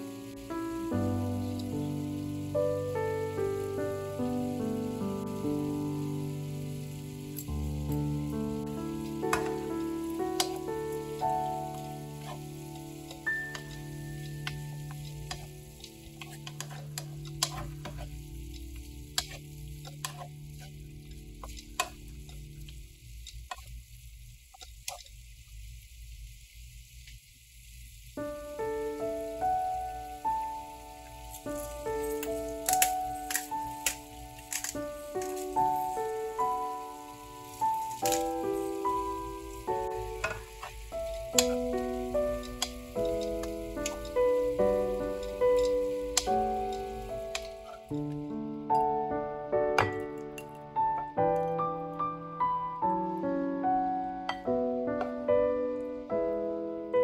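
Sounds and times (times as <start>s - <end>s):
background music with melody: 0.0s - 22.8s, 28.2s - 57.0s
vegetables sizzling in a wok: 0.0s - 57.0s
spatula scraping a pan: 12.2s - 22.5s.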